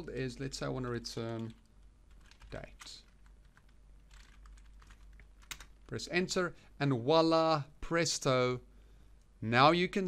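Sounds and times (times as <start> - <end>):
faint keyboard typing: 0.3 - 6.1.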